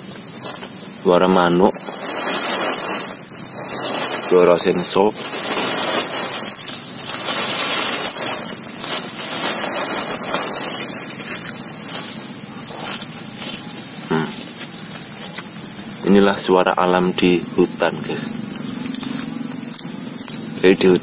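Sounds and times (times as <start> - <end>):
crickets chirping: 0.0 - 21.0
hiss: 0.0 - 21.0.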